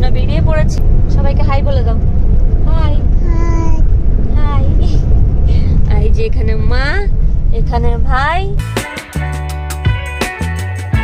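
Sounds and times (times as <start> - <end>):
people talking: 0.0 - 2.0, 2.6 - 8.6
low road rumble inside car: 0.0 - 8.6.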